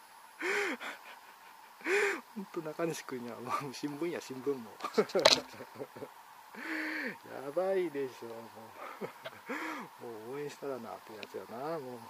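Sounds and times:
man gasping exhalations: 0:06.6 - 0:07.2, 0:09.5 - 0:09.9.

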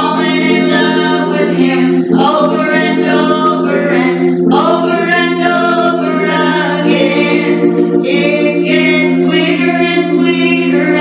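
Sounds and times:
woman singing gospel song: 0:00.0 - 0:11.0
steady low sustained tone: 0:00.8 - 0:11.0.

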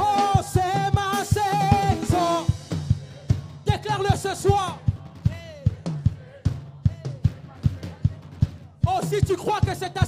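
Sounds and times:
worship band music: 0:00.0 - 0:10.0.

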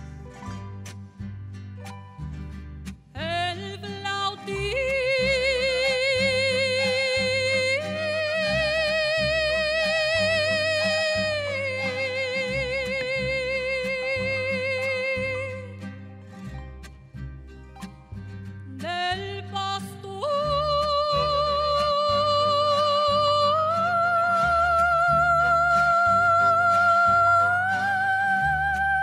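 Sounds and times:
mariachi accompaniment with harp: 0:00.0 - 0:29.0
woman singing long vibrato note: 0:03.2 - 0:15.7, 0:18.8 - 0:29.0.

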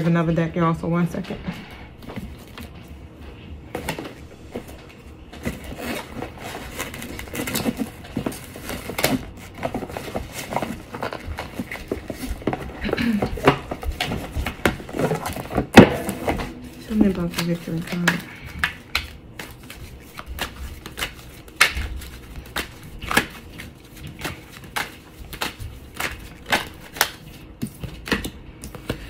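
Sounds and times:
cards and box clicking and rustling: 0:03.7 - 0:29.0.

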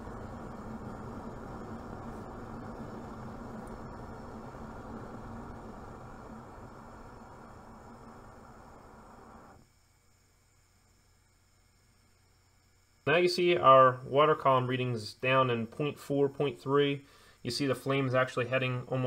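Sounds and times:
gas burner flame rushing: 0:00.0 - 0:09.6.

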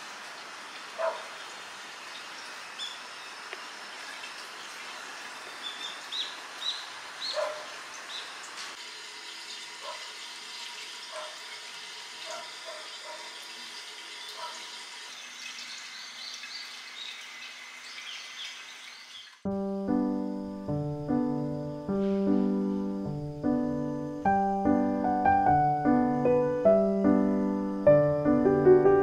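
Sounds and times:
water pouring into a bathtub: 0:00.0 - 0:06.6, 0:07.7 - 0:19.5
rain hissing: 0:00.0 - 0:08.8, 0:15.2 - 0:29.0
small bird chirping: 0:02.1 - 0:04.3, 0:05.4 - 0:08.4, 0:15.6 - 0:19.4.

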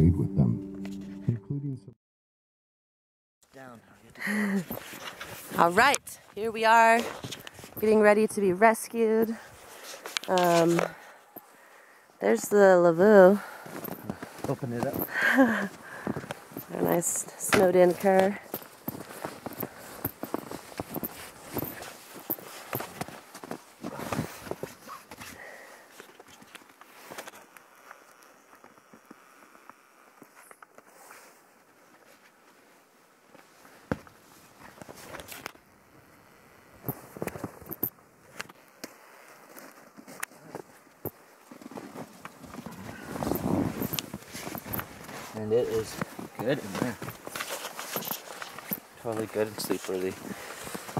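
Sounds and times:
footsteps crunching in snow: 0:13.5 - 0:28.0, 0:38.9 - 0:50.9.

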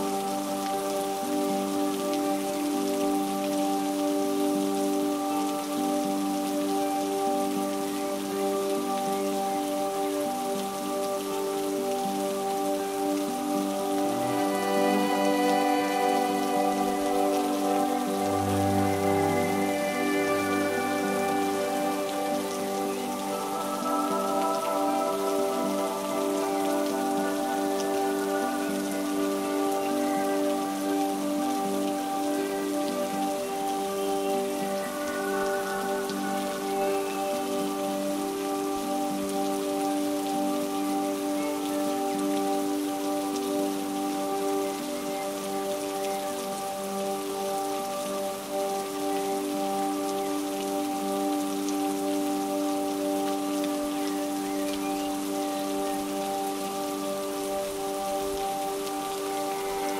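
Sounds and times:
soft ambient music: 0:00.0 - 0:59.9
steady rain falling: 0:00.0 - 0:59.9.

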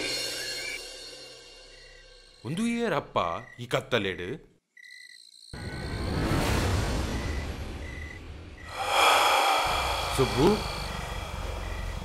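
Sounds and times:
person breathing loudly: 0:08.7 - 0:12.0.

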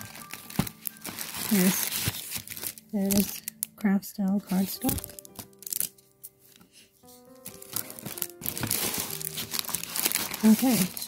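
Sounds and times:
paper and card rustling: 0:00.0 - 0:03.7, 0:04.3 - 0:11.0
soft sustained background music: 0:00.0 - 0:11.0.

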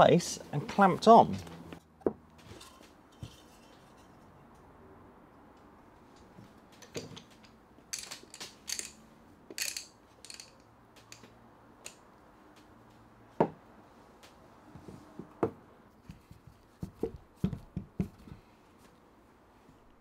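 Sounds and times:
clamp triggers ratcheting: 0:08.0 - 0:11.2.

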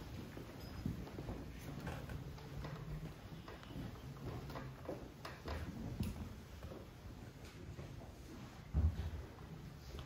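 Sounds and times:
footsteps on hard floor: 0:00.0 - 0:10.0.

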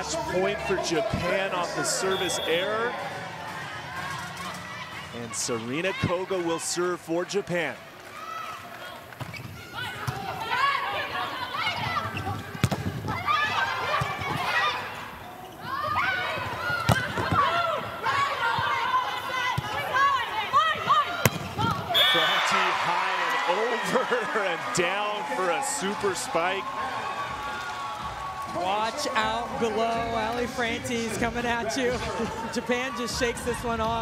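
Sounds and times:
players calling out: 0:00.0 - 0:07.4, 0:08.5 - 0:34.0
crowd cheering loudly: 0:00.0 - 0:12.1, 0:13.2 - 0:30.5
arena crowd noise: 0:00.0 - 0:34.0
shoes squeaking on court: 0:08.8 - 0:10.3, 0:11.6 - 0:17.5
volleyball sharp hits: 0:12.1 - 0:14.6, 0:16.3 - 0:18.8, 0:20.6 - 0:22.6.

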